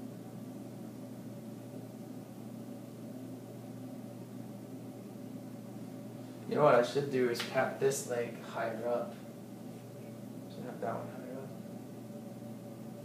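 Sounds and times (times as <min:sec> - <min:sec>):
low hum with faint hiss: 0:00.0 - 0:13.0.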